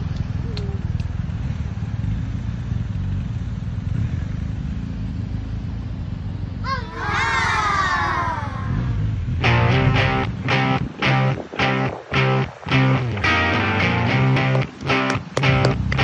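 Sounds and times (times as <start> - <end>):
motorcycle engine at low revs: 0.0 - 6.6, 8.6 - 11.0.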